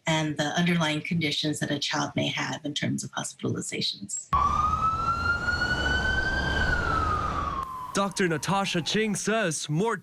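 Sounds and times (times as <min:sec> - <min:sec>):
ambulance siren wailing: 0:04.3 - 0:09.5
low traffic rumble: 0:04.4 - 0:09.4.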